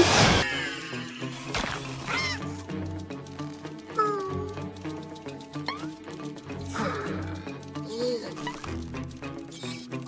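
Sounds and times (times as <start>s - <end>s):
music with fast ticking beat: 0.6s - 10.0s.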